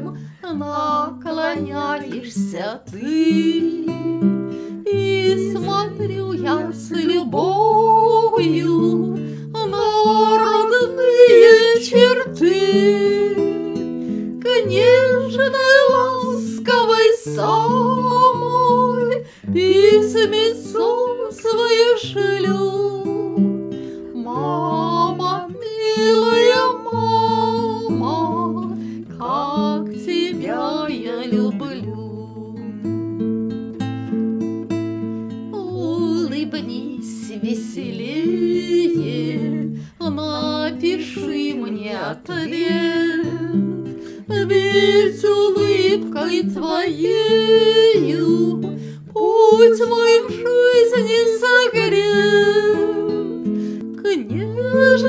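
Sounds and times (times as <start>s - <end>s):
two women singing: 0.0s - 32.9s, 35.5s - 55.0s
acoustic guitar: 0.0s - 55.0s.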